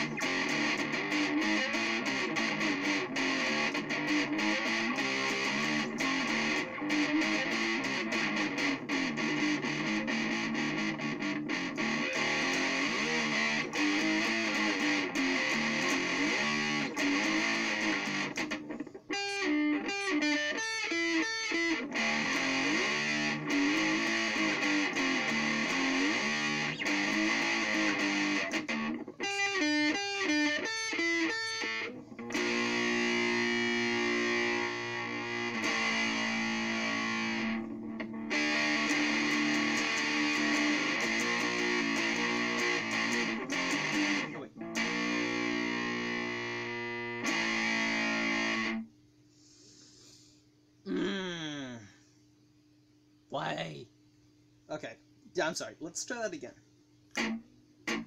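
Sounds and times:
distorted electric guitar riffing: 0:00.0 - 0:48.9, 0:57.1 - 0:58.0.

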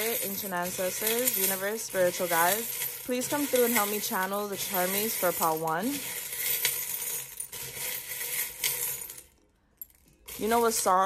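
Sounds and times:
metal charms clinking in bowl: 0:00.0 - 0:11.0.

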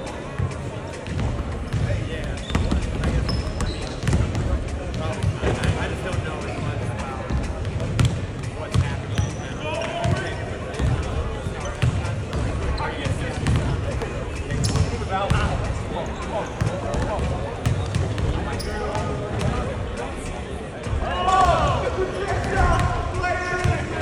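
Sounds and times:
basketballs bouncing on wooden floor: 0:00.4 - 0:05.8, 0:07.2 - 0:09.3, 0:11.8 - 0:15.7.

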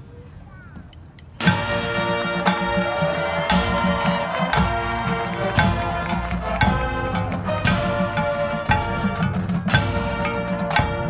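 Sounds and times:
marching drum strokes: 0:01.4 - 0:11.0.

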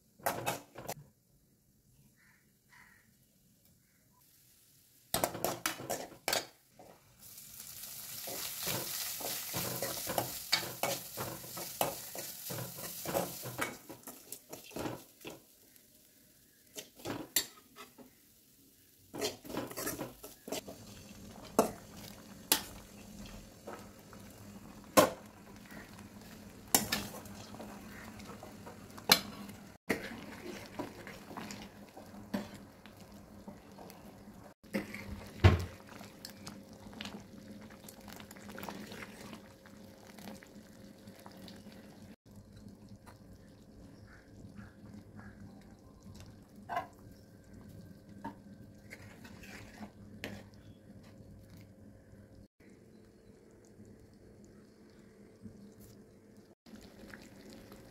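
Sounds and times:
nuts sizzling in a frying pan: 0:03.8 - 0:42.2, 0:56.7 - 0:57.9
spoon scraping pan: 0:05.2 - 0:06.6, 0:08.2 - 0:15.5, 0:16.6 - 0:18.2, 0:19.1 - 0:23.8, 0:26.7 - 0:32.7, 0:34.6 - 0:35.4, 0:48.8 - 0:50.6.

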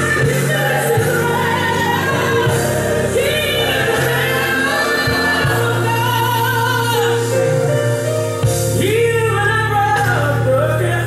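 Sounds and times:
gospel singing: 0:00.0 - 0:11.0
held bass line: 0:00.0 - 0:11.0.

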